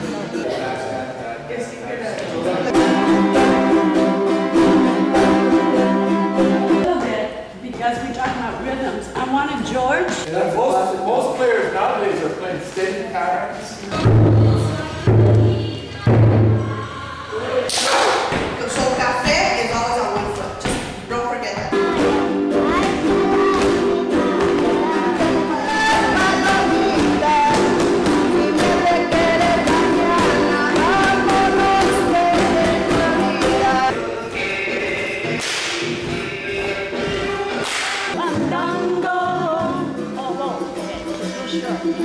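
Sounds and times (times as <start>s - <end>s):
voices singing: 2.6s - 7.0s, 13.7s - 20.4s, 21.6s - 42.0s
small guitars strummed together: 2.7s - 6.9s, 21.7s - 33.9s
taiko drum hits: 14.0s - 16.7s.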